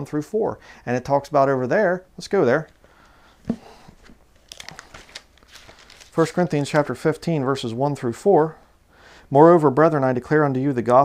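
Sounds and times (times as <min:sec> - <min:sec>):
paper pages rustling: 0:03.4 - 0:07.2.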